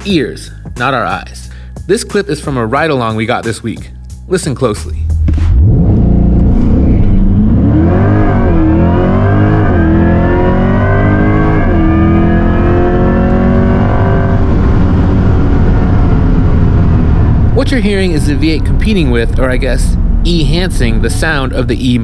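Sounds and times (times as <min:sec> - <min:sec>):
car engine running: 0:04.8 - 0:22.0.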